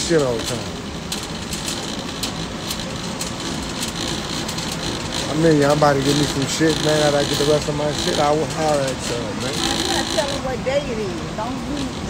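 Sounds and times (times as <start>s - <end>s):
warehouse store background noise: 0.0s - 12.0s.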